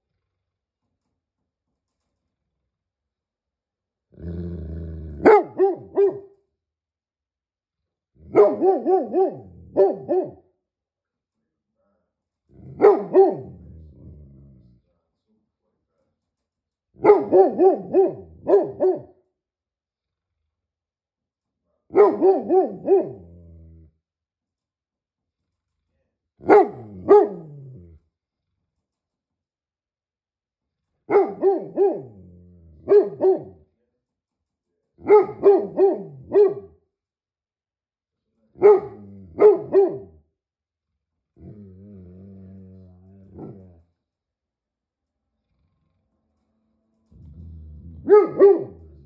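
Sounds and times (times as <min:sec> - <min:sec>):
dog growling: 0:04.1 - 0:05.5, 0:12.5 - 0:14.9, 0:22.8 - 0:24.0, 0:26.6 - 0:28.0, 0:31.9 - 0:32.9, 0:41.4 - 0:43.9, 0:47.0 - 0:49.0
dog barking deeply: 0:05.2 - 0:06.3, 0:08.2 - 0:10.4, 0:12.6 - 0:13.8, 0:17.0 - 0:19.2, 0:21.9 - 0:23.4, 0:26.4 - 0:27.8, 0:31.1 - 0:33.6, 0:35.0 - 0:36.7, 0:38.6 - 0:40.2, 0:47.9 - 0:49.0.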